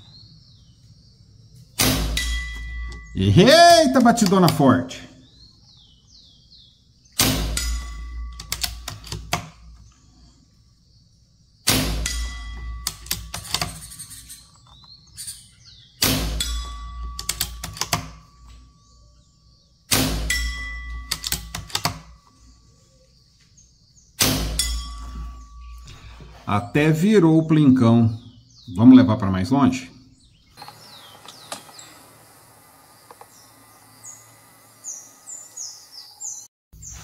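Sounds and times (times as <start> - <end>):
air rifle shots: 1.8 - 2.9, 7.2 - 9.7, 11.6 - 13.3, 16.0 - 18.2, 19.9 - 21.0, 24.2 - 25.0
steel target clanging: 1.8 - 4.5, 7.2 - 8.9, 11.7 - 14.4, 15.4 - 18.4, 19.9 - 21.5, 24.2 - 26.1.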